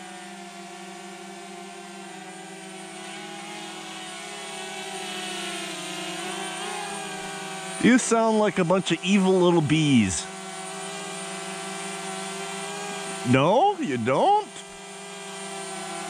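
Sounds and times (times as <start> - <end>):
drone propellers buzzing: 2.2 - 16.0.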